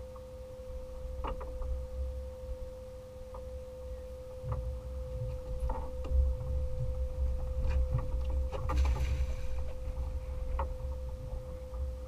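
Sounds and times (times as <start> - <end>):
faint hum: 0.0 - 12.0
wind buffeting microphone: 4.4 - 12.0.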